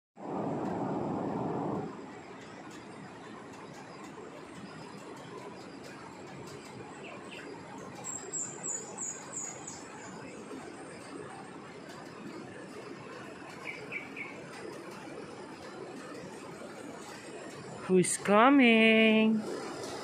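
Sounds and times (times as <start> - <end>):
loud rush of noise: 0.2 - 2.2
bird chirping: 7.0 - 10.2, 13.5 - 14.7.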